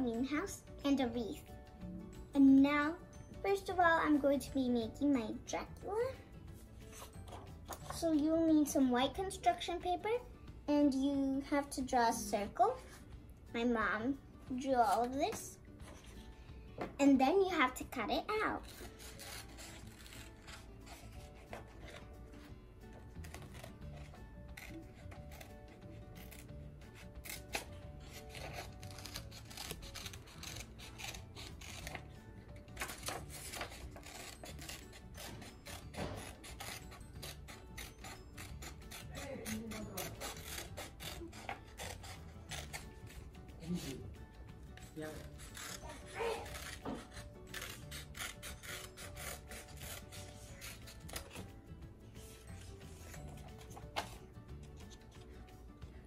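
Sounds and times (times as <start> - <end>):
scissors snipping paper: 18.3 - 22.1, 22.9 - 44.2, 44.8 - 51.5, 52.3 - 55.3.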